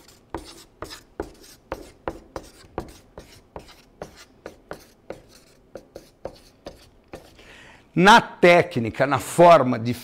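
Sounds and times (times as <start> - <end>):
marker writing on paper: 0.0 - 7.4.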